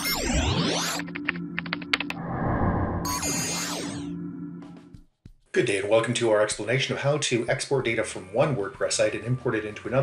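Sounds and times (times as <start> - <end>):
soft rushing noise: 2.2 - 3.1.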